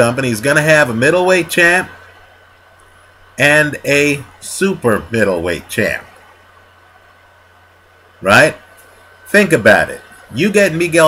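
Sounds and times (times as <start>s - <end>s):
faint hiss: 0.0s - 11.0s
low electrical hum: 0.0s - 11.0s
thin high whine: 0.0s - 11.0s.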